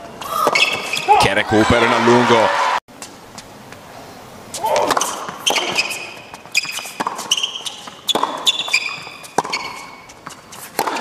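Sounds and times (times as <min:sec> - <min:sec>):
shoe squeaks on court: 0:00.3 - 0:01.2, 0:04.6 - 0:11.0
tennis racket hitting ball: 0:04.6 - 0:11.0.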